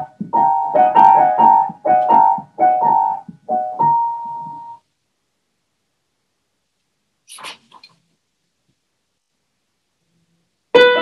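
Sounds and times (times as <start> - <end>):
sheet music rustling: 0.0 - 4.8.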